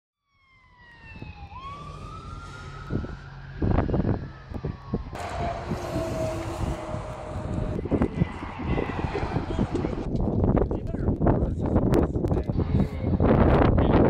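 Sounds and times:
emergency vehicle siren wailing: 0.2 - 10.1
low rumble: 2.9 - 11.3.

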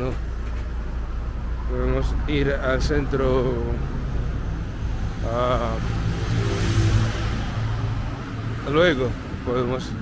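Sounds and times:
car engine passing: 0.3 - 10.0.

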